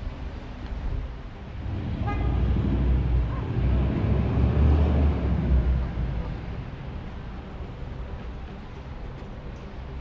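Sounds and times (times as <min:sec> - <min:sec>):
vehicle running: 0:00.0 - 0:10.0.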